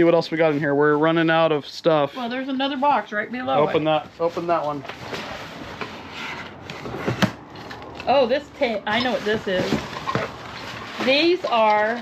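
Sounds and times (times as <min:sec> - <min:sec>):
packaging rustling and scraping: 0:03.9 - 0:12.0.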